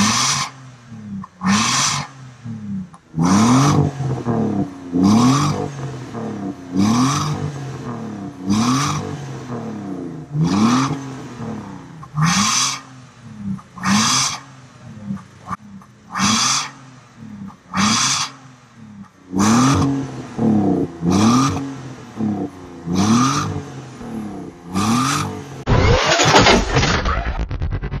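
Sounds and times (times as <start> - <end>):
car engine revving: 0.0 - 28.0.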